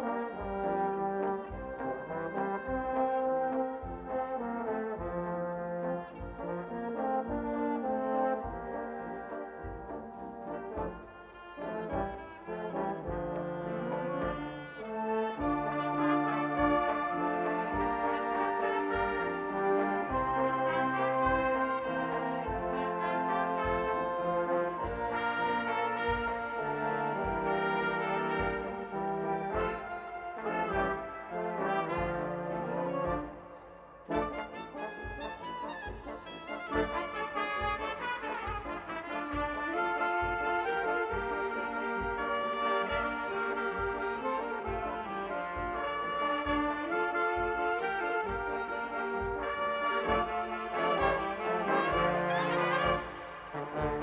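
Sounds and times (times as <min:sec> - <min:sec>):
brass band playing: 0:00.0 - 0:54.0.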